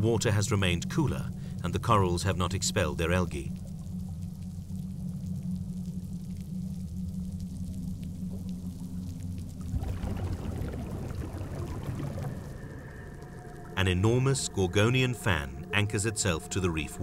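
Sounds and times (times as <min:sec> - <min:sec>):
low underwater drone: 0:00.0 - 0:17.0
scuba bubbles rushing: 0:08.2 - 0:14.7.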